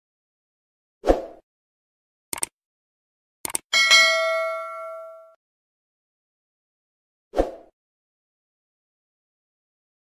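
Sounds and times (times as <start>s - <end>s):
bell ding: 3.8s - 5.4s.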